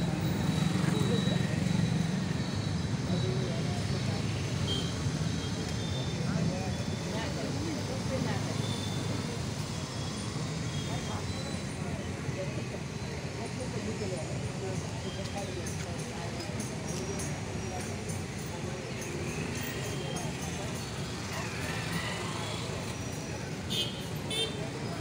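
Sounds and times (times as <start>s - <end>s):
crowd voices talking: 0.0s - 25.0s
vehicle engines passing: 0.0s - 25.0s.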